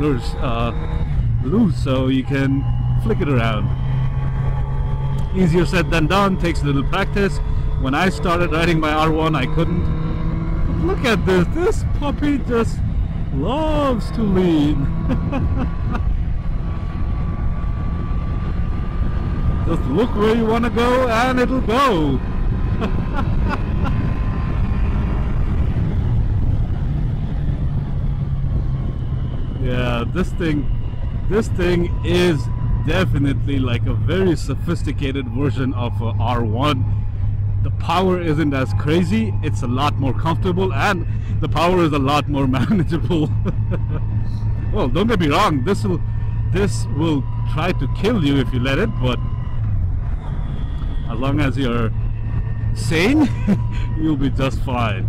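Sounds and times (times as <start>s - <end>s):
motorcycle engine drone: 0.0s - 55.0s
road rumble: 0.0s - 55.0s
wind: 0.0s - 55.0s.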